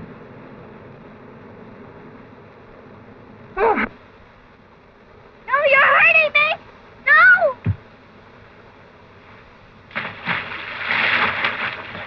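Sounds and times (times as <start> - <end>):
body splashing into water: 9.9 - 12.0.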